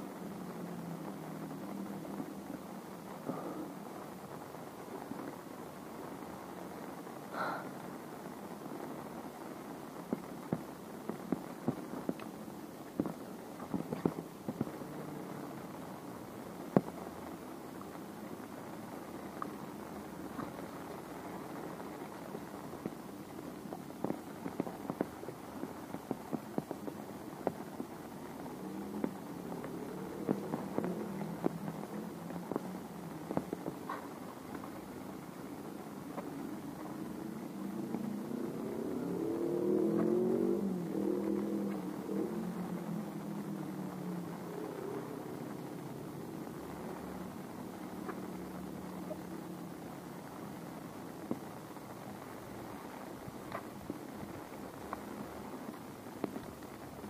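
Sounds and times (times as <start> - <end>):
steady rainfall: 0.0 - 57.0
vehicle engine passing: 36.7 - 49.6.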